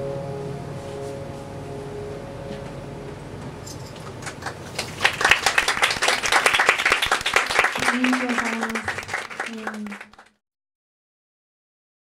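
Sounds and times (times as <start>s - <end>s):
band sustained chord: 0.0s - 4.2s
audience applause: 4.2s - 10.4s.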